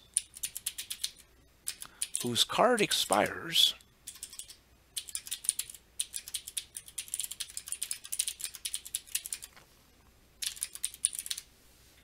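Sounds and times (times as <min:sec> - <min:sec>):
typing on computer keyboard: 0:00.1 - 0:02.3, 0:04.0 - 0:09.6, 0:10.4 - 0:11.5.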